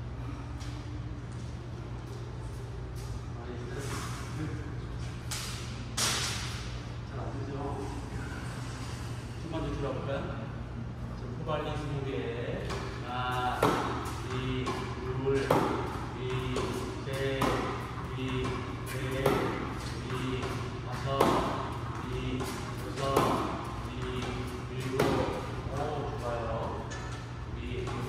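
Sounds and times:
tennis racket hitting ball: 0:12.6 - 0:25.5.

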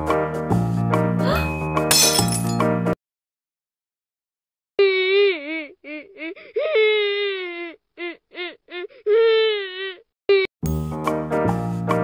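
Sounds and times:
background music: 0:00.0 - 0:03.0, 0:10.6 - 0:12.0
glass shattering effect: 0:01.7 - 0:02.8.

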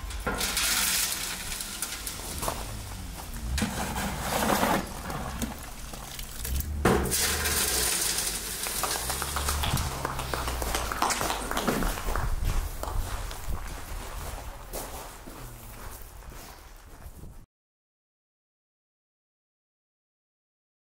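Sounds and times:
metal shovel scraping concrete: 0:00.0 - 0:10.4
wet concrete sliding down chute: 0:00.0 - 0:12.2.

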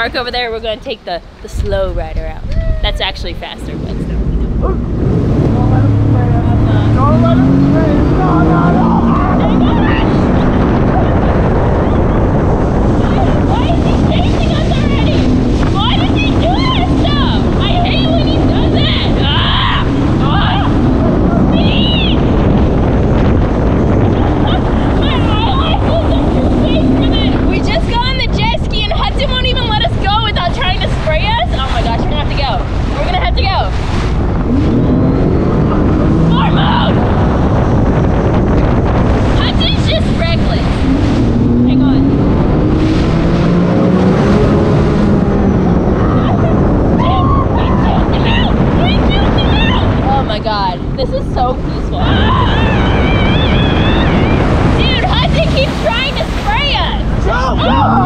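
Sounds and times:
watercraft engine: 0:00.0 - 0:58.0
water spray rushing: 0:02.9 - 0:45.3, 0:47.8 - 0:58.0.

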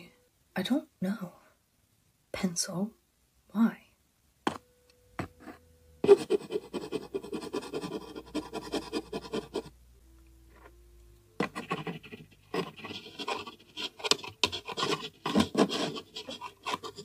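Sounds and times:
pencil scratching while writing: 0:05.2 - 0:09.7, 0:11.4 - 0:17.0.

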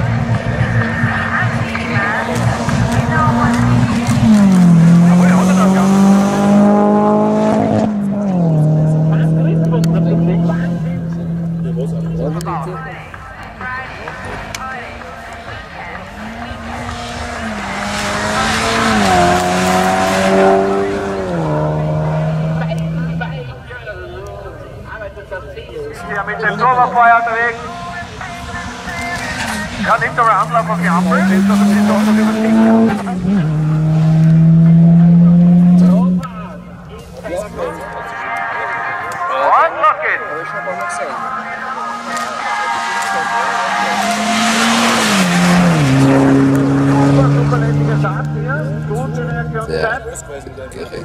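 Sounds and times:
car engine at high revs: 0:00.0 - 0:23.7, 0:25.8 - 0:51.0.

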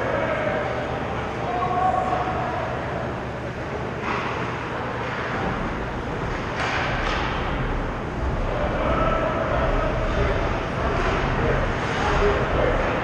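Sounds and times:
arena rumble and hiss: 0:00.0 - 0:13.0
faint distant voices: 0:00.0 - 0:13.0.

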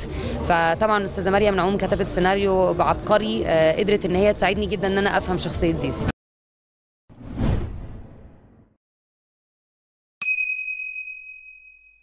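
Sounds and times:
bright bell ding: 0:10.2 - 0:12.0.

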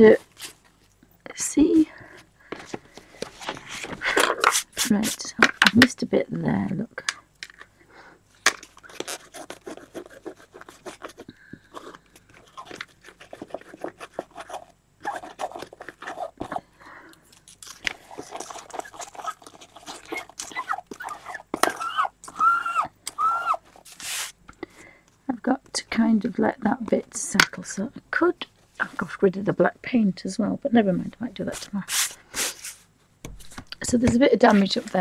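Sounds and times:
fingertips rubbing scratchy paper: 0:03.6 - 0:05.3, 0:08.9 - 0:11.3, 0:12.4 - 0:16.5, 0:18.0 - 0:24.4.

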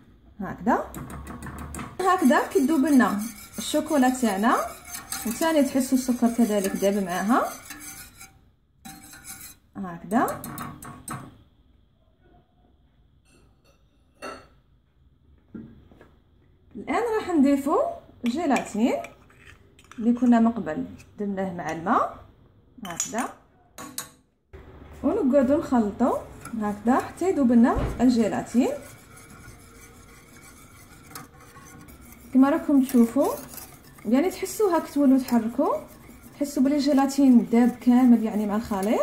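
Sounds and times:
whisk swishing in a saucepan: 0:02.0 - 0:08.3, 0:08.9 - 0:09.6, 0:25.6 - 0:39.0
kitchenware clink: 0:23.8 - 0:24.2.

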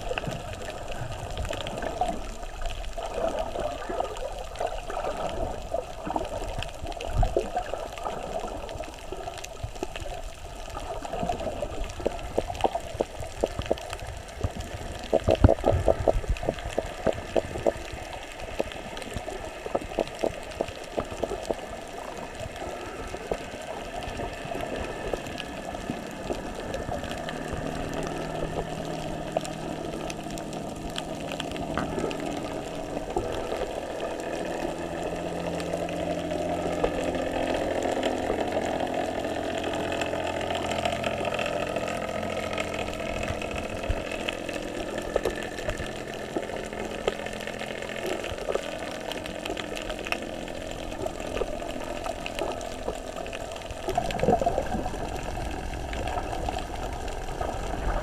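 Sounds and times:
muffled underwater noise: 0:00.0 - 0:58.0
steady low hum: 0:00.0 - 0:58.0.

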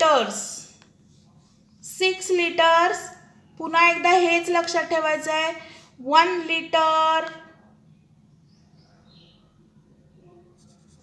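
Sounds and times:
pencil scratching on paper: 0:10.5 - 0:11.0.

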